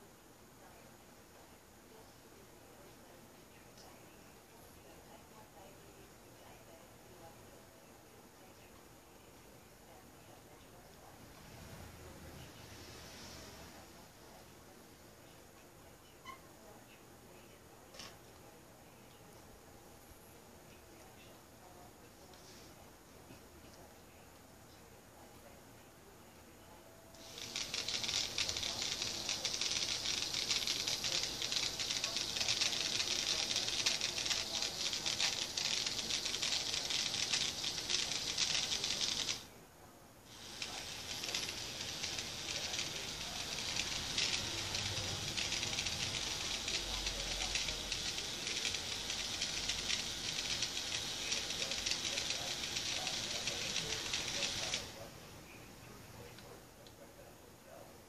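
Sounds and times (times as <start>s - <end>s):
toy motor with rattling gears: 27.2s - 39.5s, 40.3s - 55.0s.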